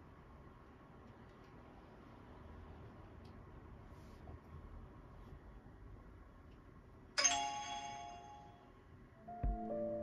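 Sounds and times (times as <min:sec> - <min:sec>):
faint room hiss: 0:00.0 - 0:10.0
timer alarm ding-dong chime: 0:07.2 - 0:08.6.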